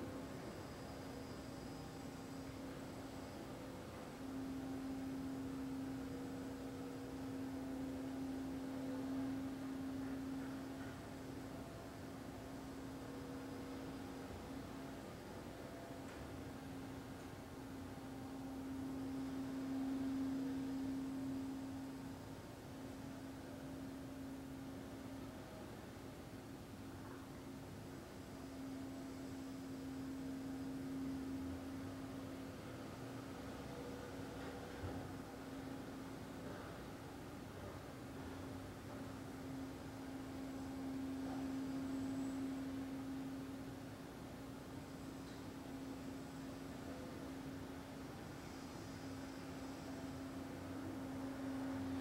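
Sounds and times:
faint room hiss: 0.0 - 52.0
low hum-like tone: 0.0 - 52.0.

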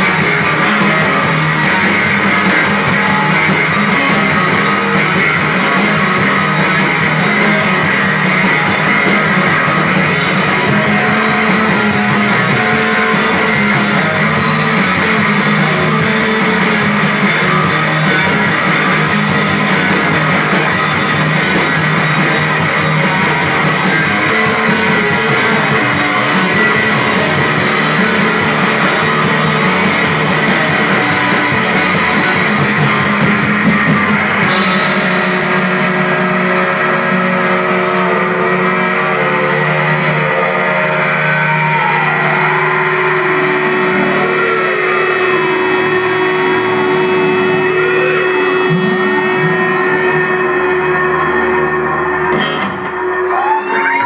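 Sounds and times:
held guitar notes with pitch glides: 0.0 - 54.0
live rock band playing: 0.0 - 54.0.

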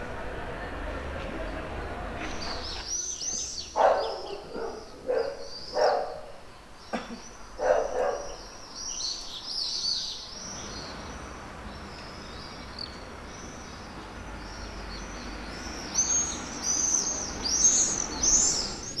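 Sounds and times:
street ambience hum: 0.0 - 19.0
small birds chirping: 2.2 - 19.0.

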